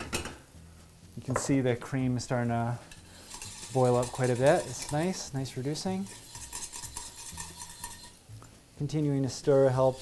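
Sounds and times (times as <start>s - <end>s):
whisk stirring boiling cream: 2.3s - 8.2s, 9.3s - 10.0s
wire whisk clinking against pot: 2.8s - 8.2s.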